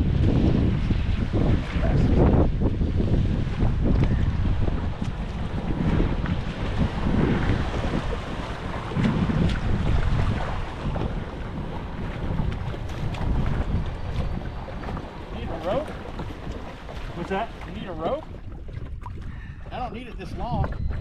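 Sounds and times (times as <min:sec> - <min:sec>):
water washing around kayak hull: 0:00.0 - 0:21.0
wind buffeting microphone: 0:00.0 - 0:21.0.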